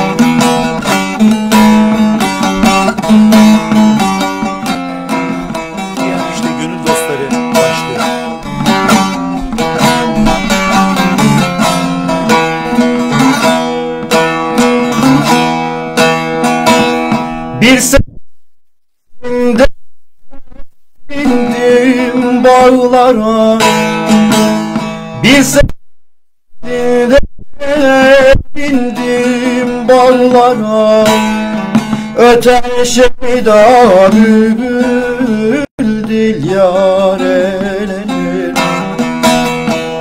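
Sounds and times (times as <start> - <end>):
plucked long-necked lute: 0.0 - 18.2, 21.1 - 25.8, 26.6 - 40.0.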